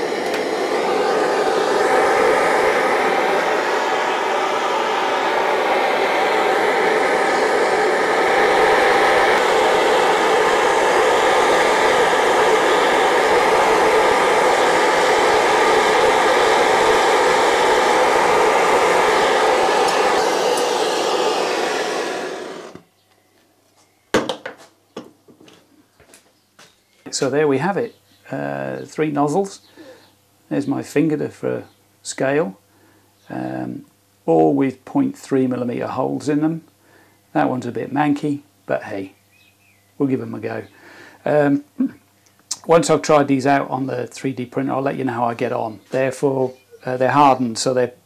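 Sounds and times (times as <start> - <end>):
blowtorch burning: 0.0 - 22.9.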